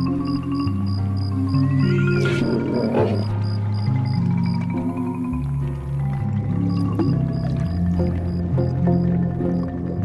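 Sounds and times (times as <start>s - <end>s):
background music with ticking pulse: 0.0s - 10.0s
low animal call: 1.5s - 3.4s.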